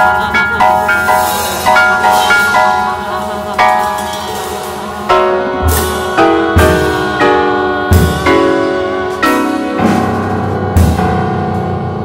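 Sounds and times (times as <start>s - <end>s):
bell-like jazz chords: 0.0s - 12.0s.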